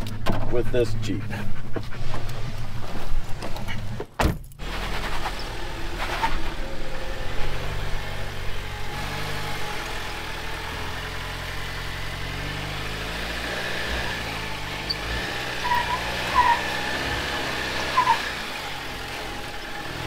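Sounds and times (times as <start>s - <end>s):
car engine at low revs: 0.0s - 20.0s.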